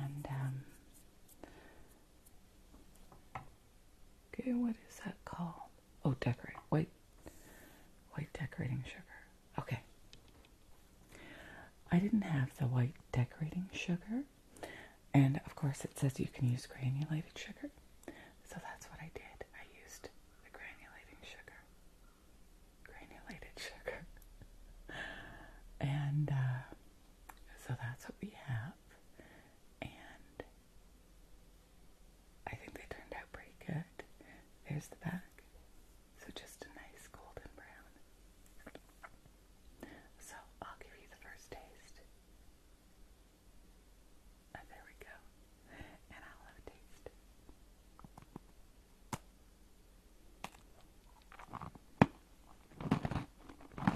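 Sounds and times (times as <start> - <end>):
woman whispering: 0.0 - 1.0, 4.3 - 7.0, 8.1 - 9.9, 11.5 - 14.3, 15.1 - 21.7, 22.8 - 24.2, 25.8 - 26.8, 27.4 - 29.0, 29.8 - 30.6, 32.4 - 35.5, 36.2 - 38.0, 39.8 - 42.1, 44.5 - 47.2.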